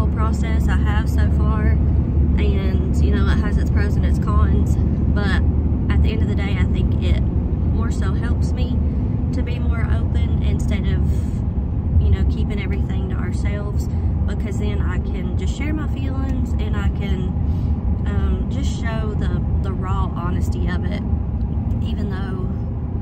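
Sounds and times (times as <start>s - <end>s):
woman talking: 0.0s - 11.4s, 12.0s - 17.4s, 18.0s - 21.1s, 21.7s - 22.6s
road and engine rumble: 0.0s - 23.0s.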